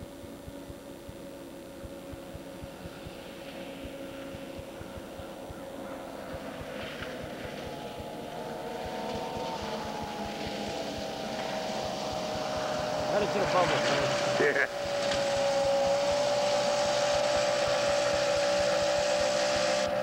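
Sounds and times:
snowmobile engine whine: 0.0s - 20.0s.

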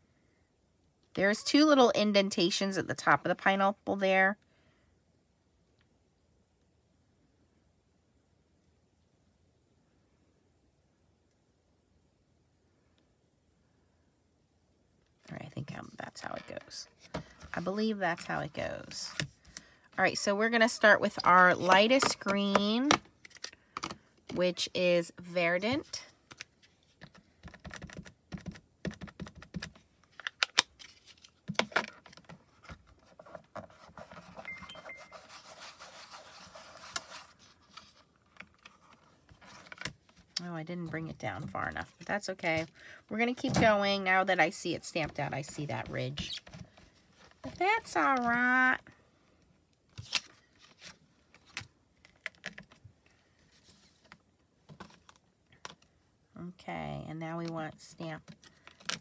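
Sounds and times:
soft rubbing on cardstock: 33.0s - 38.0s.

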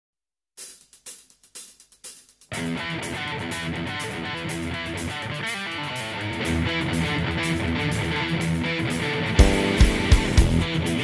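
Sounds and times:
hi-hat strikes ringing: 0.6s - 4.7s, 9.4s - 11.0s.

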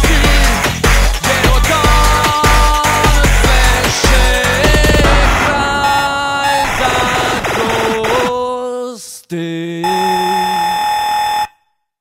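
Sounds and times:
low drone: 4.7s - 7.7s
buzzy synth tone: 4.7s - 8.0s.

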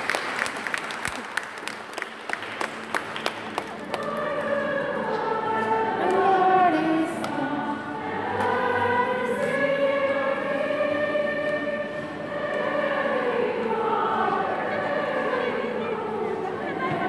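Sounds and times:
choir singing a hymn: 3.7s - 17.0s.

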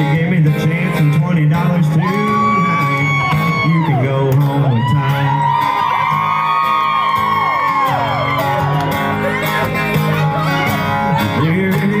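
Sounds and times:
acoustic country band: 0.0s - 12.0s.

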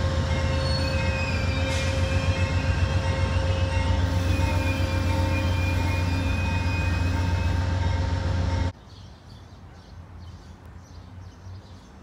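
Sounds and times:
train rumbling past: 0.0s - 8.8s.

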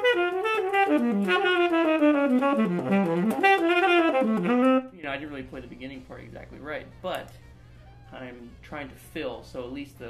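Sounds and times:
saxophone playing jazz lick: 0.0s - 5.0s.

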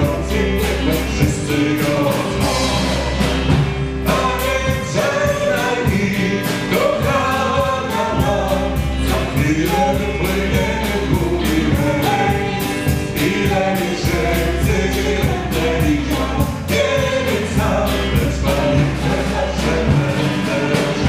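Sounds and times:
drum kit beat: 0.0s - 21.0s
electric guitar: 0.0s - 21.0s
woman singing: 6.7s - 21.0s.

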